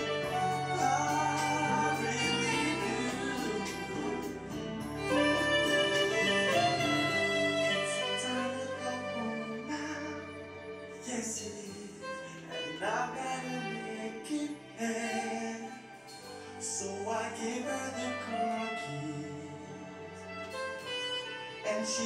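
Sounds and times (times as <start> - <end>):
backing track with bass line: 0.0 - 11.9
digital wind instrument melody: 0.0 - 22.0.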